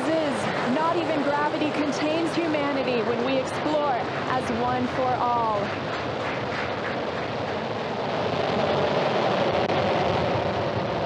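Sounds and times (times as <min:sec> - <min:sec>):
rocket engines crackling rumble: 0:00.0 - 0:11.0.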